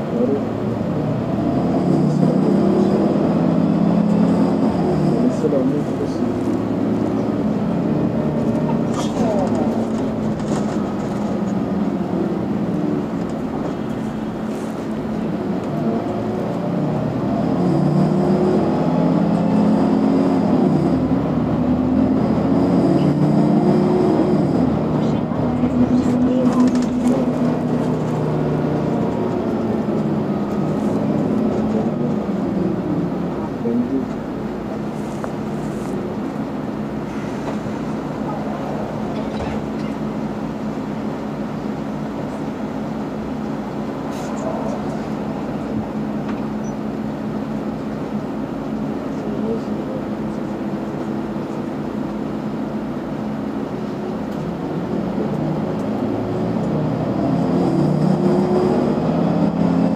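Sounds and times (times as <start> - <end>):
bus engine pulling hard: 0.0 - 59.9.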